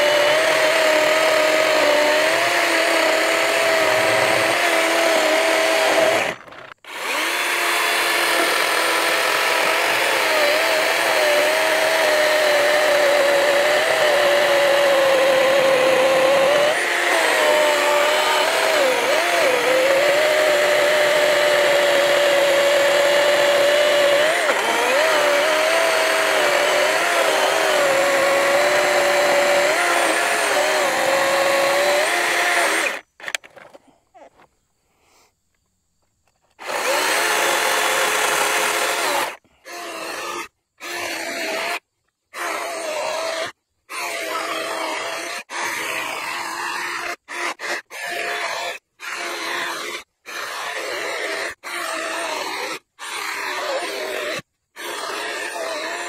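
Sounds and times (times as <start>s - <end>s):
chainsaw cutting log: 0.0s - 34.5s, 36.4s - 56.0s.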